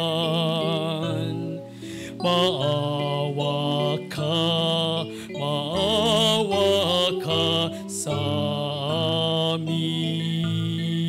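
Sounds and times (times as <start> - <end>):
instrumental accompaniment: 0.0 - 11.0
person singing church music: 0.0 - 11.0.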